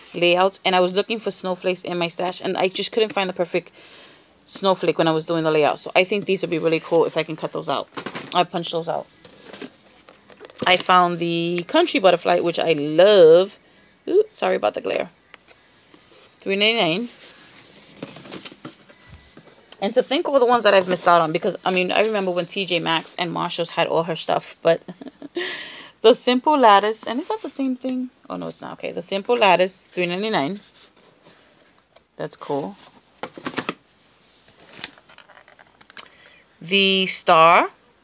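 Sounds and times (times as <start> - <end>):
cardboard boxes clicking and rustling: 7.8 - 8.4, 17.4 - 19.6, 33.2 - 33.8
packaging rubbing and rustling: 16.9 - 19.7, 32.8 - 35.9.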